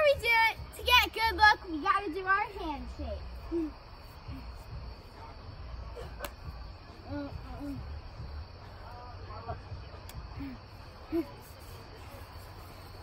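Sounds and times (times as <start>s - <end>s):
crickets chirring: 0.0s - 13.0s.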